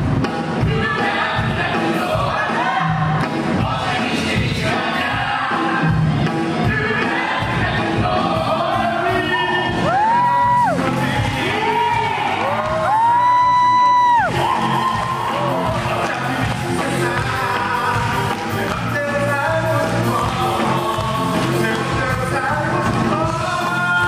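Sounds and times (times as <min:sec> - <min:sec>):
amplified backing music: 0:00.0 - 0:24.0.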